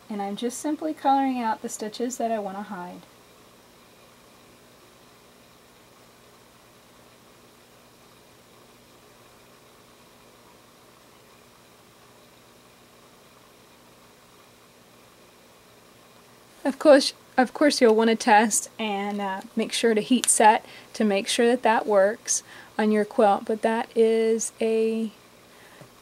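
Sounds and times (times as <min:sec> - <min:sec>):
faint steady hiss: 0:00.0 - 0:26.0.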